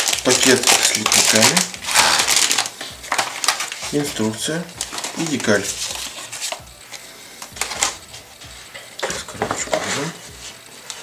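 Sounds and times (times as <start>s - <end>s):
plastic bag crinkling: 0.0s - 8.2s
paper booklet rustling: 0.0s - 11.0s.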